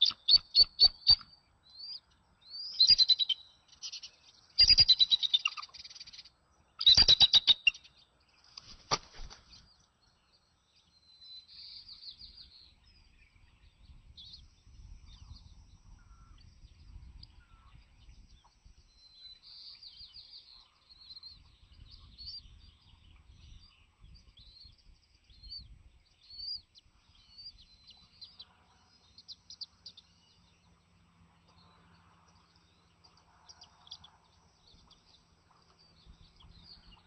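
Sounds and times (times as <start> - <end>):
high bird chirps: 0.0 - 8.0.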